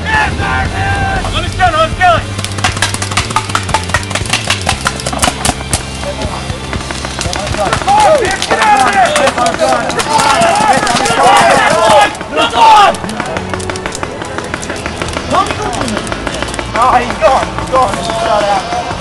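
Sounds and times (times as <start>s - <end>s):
players shouting: 0.0s - 19.0s
paintball markers firing: 2.3s - 19.0s.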